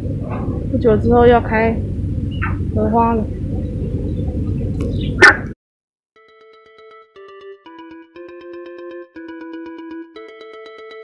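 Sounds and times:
low rumble: 0:00.0 - 0:05.6
dog bark: 0:05.2 - 0:05.6.

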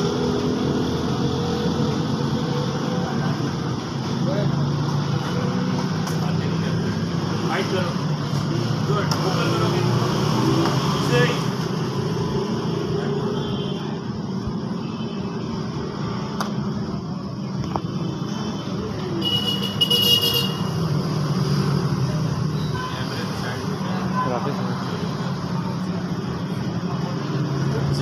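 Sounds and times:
outdoor background noise: 0:00.0 - 0:28.0.

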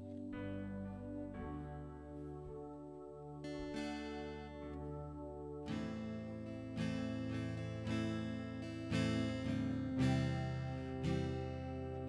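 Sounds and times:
acoustic guitar strumming chords: 0:03.4 - 0:12.0.

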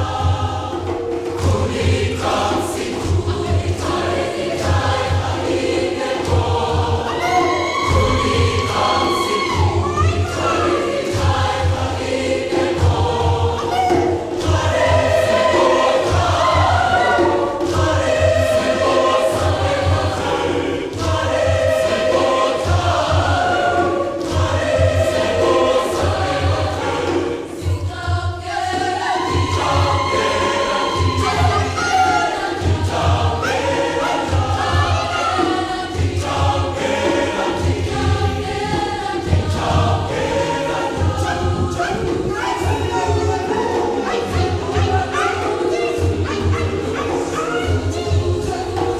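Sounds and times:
choir singing: 0:00.0 - 0:48.9.

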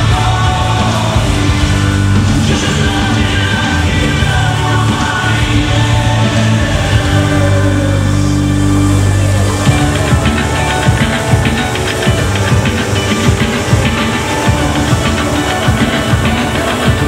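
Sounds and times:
rapid sharp percussive hits: 0:09.7 - 0:17.0.

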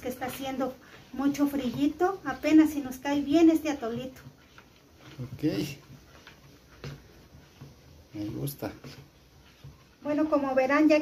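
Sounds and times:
metal spoon stirring in bowl: 0:00.0 - 0:11.0.

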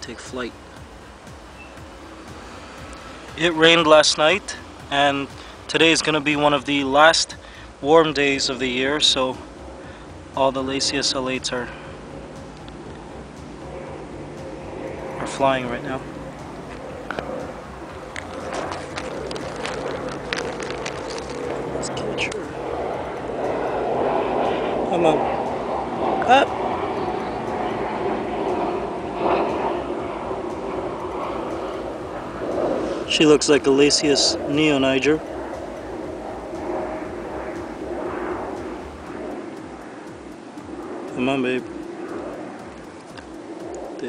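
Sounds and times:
low hum and rumble: 0:00.0 - 0:44.0
camera handling clicks and rustles: 0:18.1 - 0:21.6.

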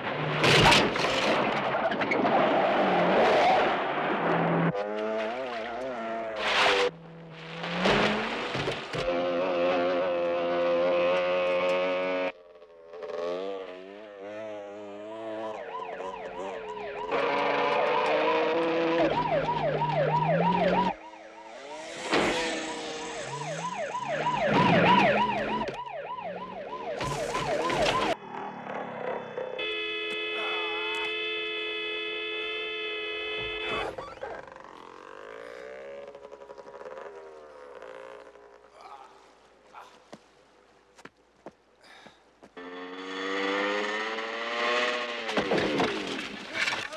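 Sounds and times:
police car engine revving: 0:02.5 - 0:31.8, 0:42.6 - 0:45.4
motorcycle engine revving: 0:09.0 - 0:30.0, 0:33.9 - 0:38.8, 0:42.6 - 0:45.6
police siren wailing: 0:14.8 - 0:34.4.

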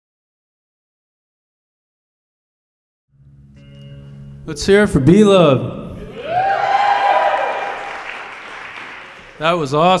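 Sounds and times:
person cheering: 0:06.0 - 0:08.2
audience applauding: 0:06.2 - 0:10.0.

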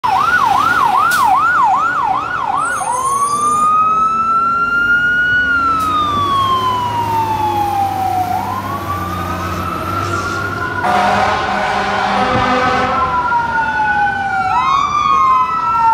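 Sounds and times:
fire engine siren: 0:00.0 - 0:15.9.

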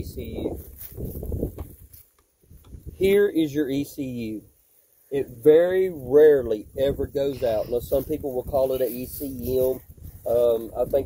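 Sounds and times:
footsteps on dry leaves: 0:00.5 - 0:02.2.

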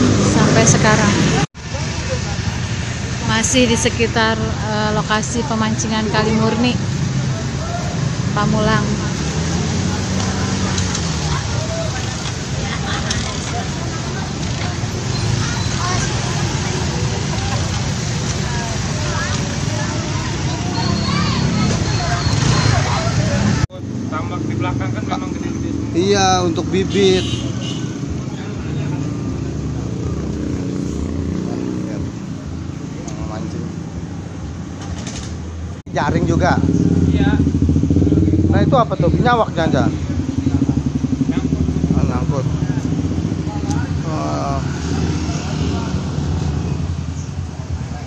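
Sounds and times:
motorcycle engines running: 0:00.0 - 0:48.0
faint voices: 0:07.0 - 0:25.9.

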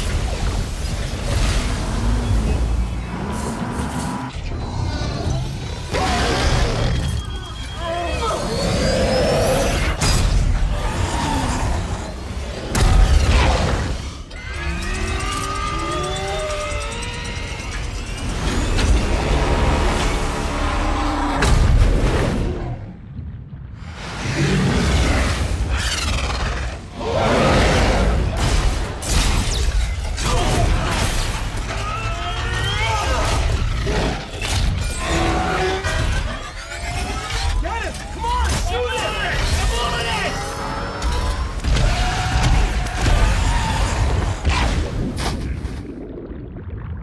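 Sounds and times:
low rumble: 0:10.2 - 0:25.8, 0:42.6 - 0:47.0.

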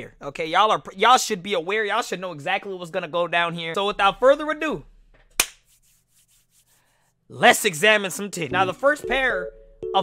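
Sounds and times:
sharp hand clap: 0:05.4 - 0:05.7.

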